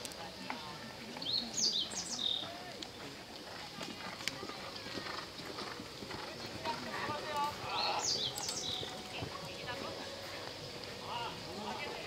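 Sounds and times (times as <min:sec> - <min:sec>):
horse hooves on sand: 0:00.0 - 0:12.0
people talking: 0:00.0 - 0:12.0
bird chirping: 0:01.2 - 0:02.5, 0:07.6 - 0:09.2.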